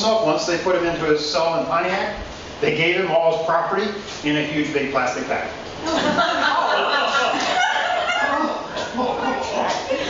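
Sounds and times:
audience laughing: 5.8 - 10.0.

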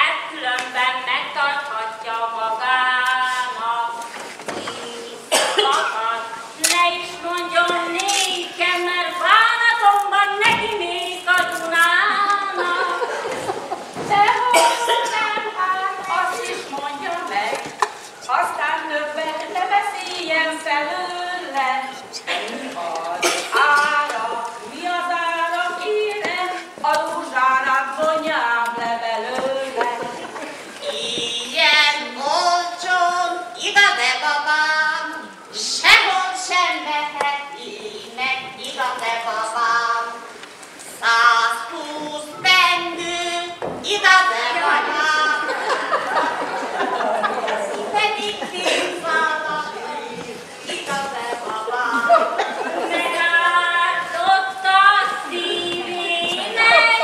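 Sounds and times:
woman coughing: 5.3 - 6.0, 14.4 - 15.3, 23.2 - 24.0, 48.4 - 49.2.

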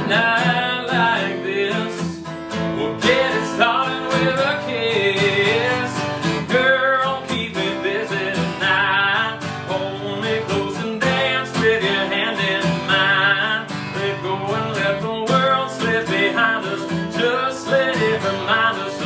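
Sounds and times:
acoustic guitar strumming: 0.0 - 19.0
man singing: 0.0 - 19.0.

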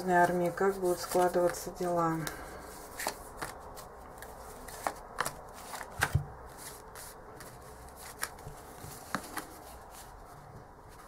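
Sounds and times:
cards clicking and slapping: 1.0 - 9.6
cards snapping: 2.2 - 6.8, 7.4 - 9.6.

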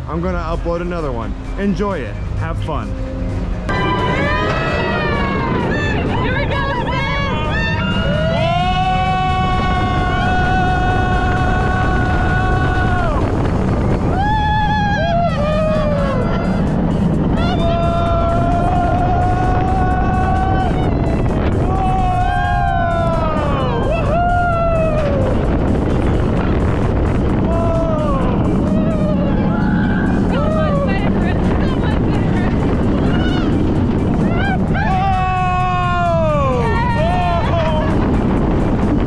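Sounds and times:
roller coaster train rumbling: 0.0 - 39.0
rush of wind: 0.0 - 39.0
riders screaming and whooping: 3.7 - 39.0.

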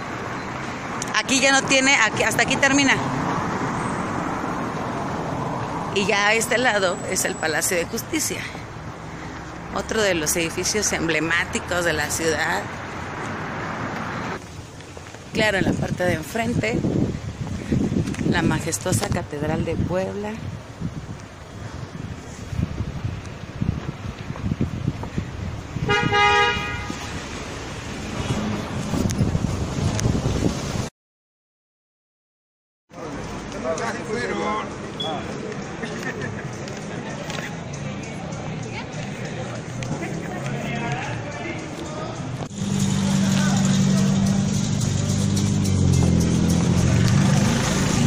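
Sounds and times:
street traffic rumble: 0.0 - 30.9, 32.9 - 48.0
car horn honk: 25.8 - 27.1
vehicle engine running: 42.4 - 48.0.

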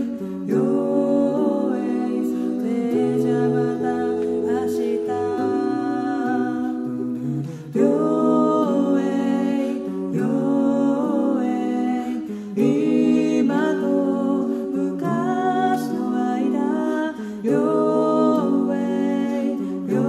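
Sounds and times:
a cappella group singing harmony: 0.0 - 20.0.

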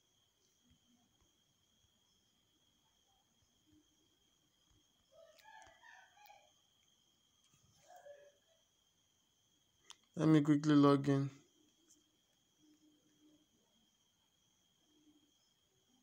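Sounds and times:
faint rooster crowing: 5.0 - 8.7.

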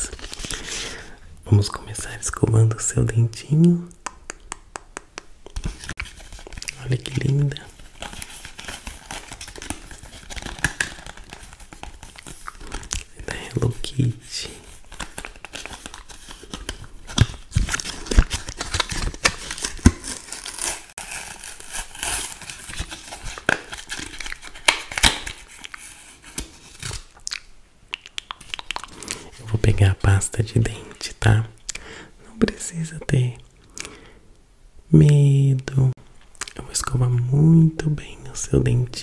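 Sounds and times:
plastic packaging crinkling: 5.6 - 27.4.

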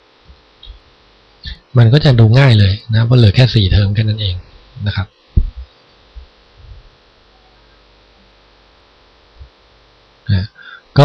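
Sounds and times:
faint electrical hum: 0.0 - 11.0
soft low thumps: 5.3 - 7.0, 9.3 - 9.6.

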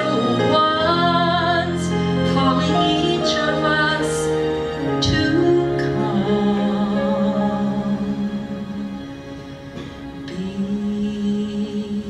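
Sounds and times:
woman singing slow song: 0.0 - 8.6, 10.2 - 12.0
instrumental accompaniment: 0.0 - 12.0.

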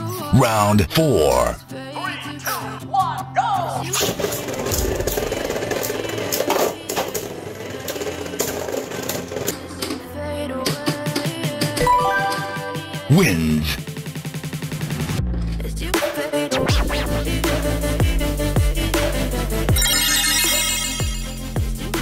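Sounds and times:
background music: 0.0 - 22.0.

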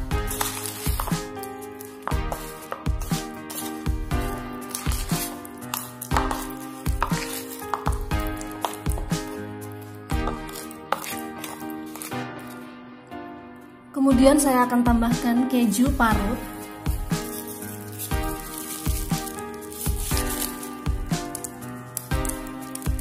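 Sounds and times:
background music with sustained notes: 0.0 - 23.0.

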